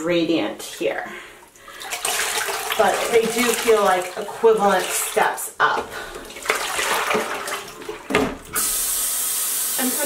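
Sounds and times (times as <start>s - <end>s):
water gushing into a sink: 1.7s - 10.0s.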